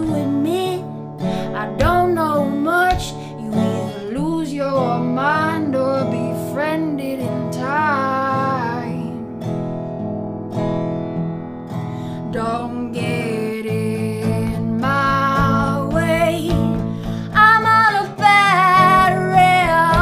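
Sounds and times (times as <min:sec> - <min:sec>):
woman singing: 0:00.0 - 0:09.5, 0:12.1 - 0:20.0.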